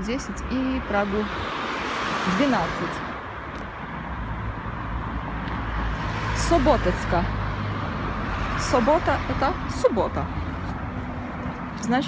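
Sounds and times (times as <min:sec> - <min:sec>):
car engine and tyres rumbling: 0:00.0 - 0:12.0.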